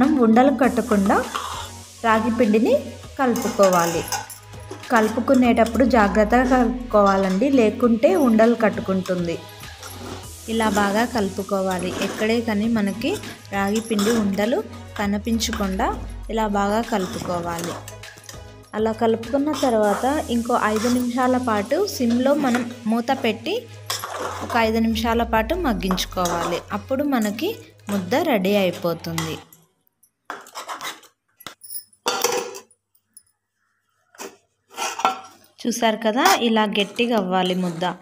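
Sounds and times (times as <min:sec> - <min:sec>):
woman speaking: 0:00.0 - 0:01.3, 0:02.0 - 0:04.2, 0:04.9 - 0:09.5, 0:10.5 - 0:17.8, 0:18.7 - 0:23.7, 0:24.5 - 0:29.5, 0:35.6 - 0:38.0
background music: 0:00.0 - 0:29.8
metal utensils scraping a pot: 0:00.8 - 0:29.5, 0:30.3 - 0:31.2, 0:34.0 - 0:38.0.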